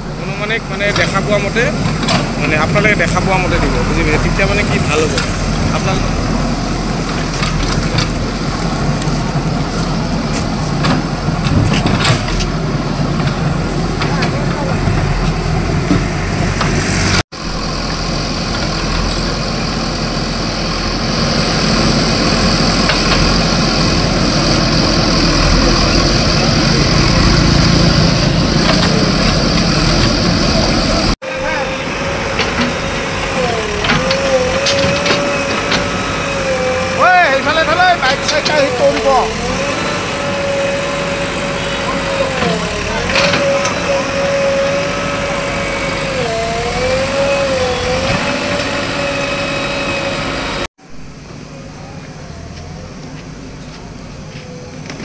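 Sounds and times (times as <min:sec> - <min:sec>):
diesel engine running: 0:00.0 - 0:55.0
backhoe digging into earth: 0:21.0 - 0:50.6.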